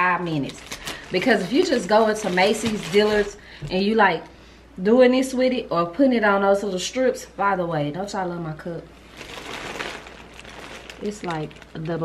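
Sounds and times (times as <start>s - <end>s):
plastic tumbler rustling: 0.0s - 3.9s, 9.0s - 12.0s.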